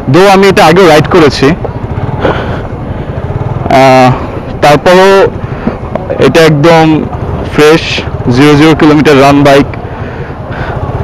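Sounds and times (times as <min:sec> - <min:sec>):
man talking: 0:00.0 - 0:01.6, 0:03.7 - 0:05.4, 0:06.0 - 0:09.7
motorcycle engine at low revs: 0:00.0 - 0:11.0.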